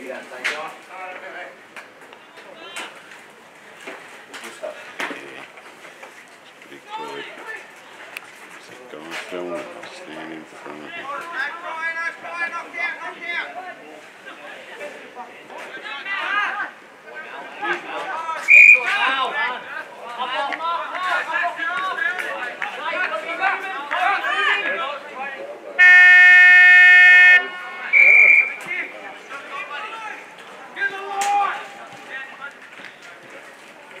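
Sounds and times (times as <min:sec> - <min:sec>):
spectators chattering and shouting: 0:00.0 - 0:34.0
shrill whistle blasts: 0:18.4 - 0:18.9, 0:25.8 - 0:28.7
siren horn blast: 0:25.8 - 0:28.1.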